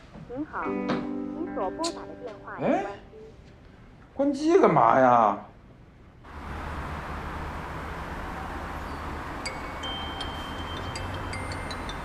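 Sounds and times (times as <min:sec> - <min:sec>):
light chime-like tones: 0:08.8 - 0:12.0.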